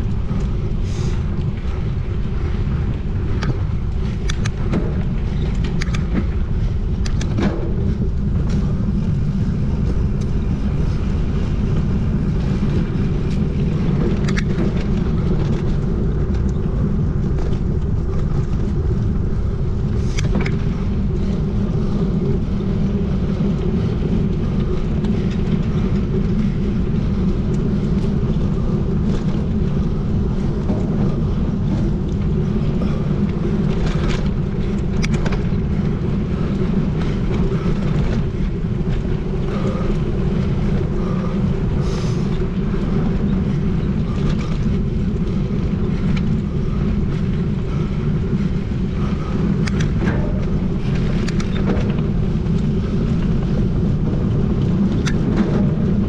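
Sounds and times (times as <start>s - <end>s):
bike rattles and clicks: 0.0s - 56.0s
bike tyres rumbling on dirt: 0.0s - 56.0s
wind on microphone: 0.0s - 56.0s.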